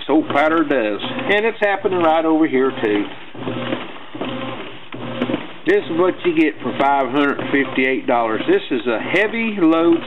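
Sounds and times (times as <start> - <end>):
person talking: 0.0 - 3.2, 5.7 - 10.0
washing machine whirring: 0.0 - 10.0.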